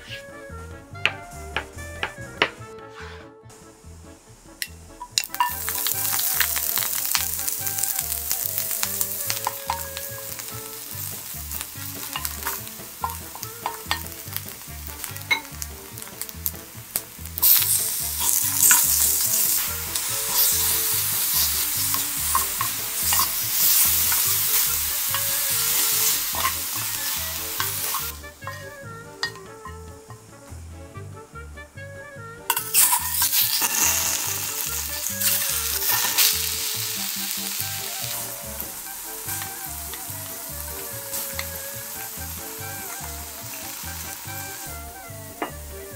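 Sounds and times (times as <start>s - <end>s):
wooden spoon scraping a pan: 0.0s - 0.4s, 1.1s - 3.3s, 8.6s - 16.6s, 17.4s - 29.6s, 32.5s - 36.4s
food sizzling in a pan: 4.6s - 30.6s, 32.5s - 45.9s.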